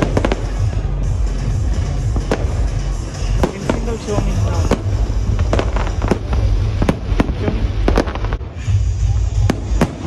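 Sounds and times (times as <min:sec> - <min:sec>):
fireworks bangs: 0:00.0 - 0:01.0, 0:01.6 - 0:10.0
loud music with heavy beat: 0:00.0 - 0:10.0.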